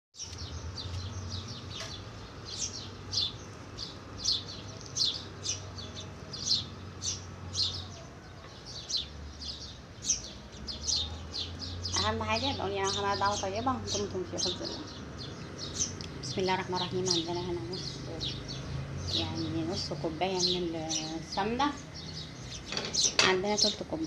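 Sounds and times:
small bird chirping: 0:00.2 - 0:24.0.

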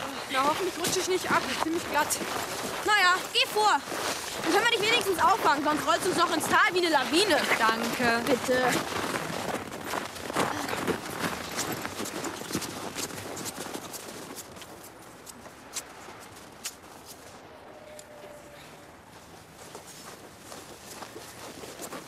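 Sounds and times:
footsteps crunching in snow: 0:00.0 - 0:22.0.

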